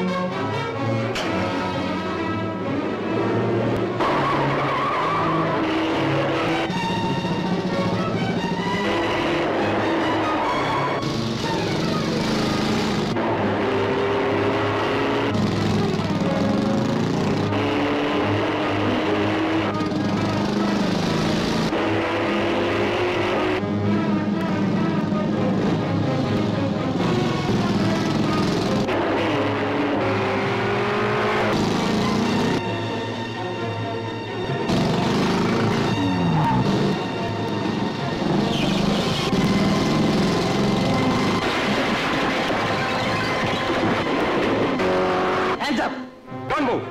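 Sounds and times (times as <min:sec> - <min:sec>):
car engines running: 0:00.0 - 0:45.6
dramatic film score: 0:00.0 - 0:46.9
car skidding: 0:02.9 - 0:23.6, 0:27.0 - 0:33.3, 0:33.9 - 0:45.6
tyres squealing: 0:04.0 - 0:13.2.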